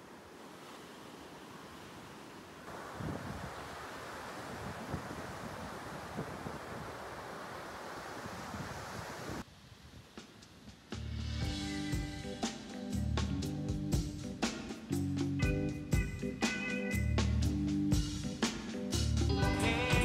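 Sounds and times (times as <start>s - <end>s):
waves washing over sand: 0.0s - 9.5s
wind buffeting microphone: 2.8s - 10.1s.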